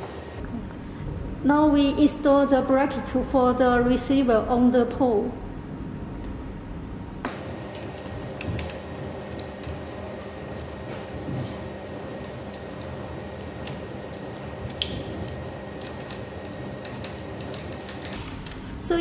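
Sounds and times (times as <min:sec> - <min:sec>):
steady background hum: 0:00.0 - 0:19.0.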